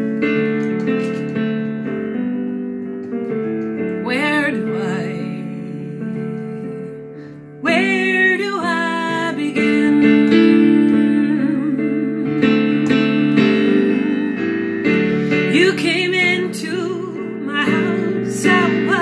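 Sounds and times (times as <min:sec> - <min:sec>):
held keyboard chords: 0:00.0 - 0:19.0
woman singing slow song: 0:04.0 - 0:19.0.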